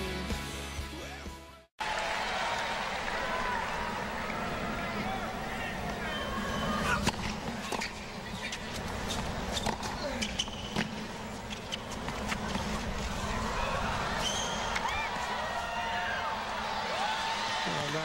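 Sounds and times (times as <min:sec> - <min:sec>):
crowd calls: 0:01.8 - 0:08.5, 0:12.3 - 0:18.0
tennis ball strikes and bounces: 0:06.8 - 0:13.1.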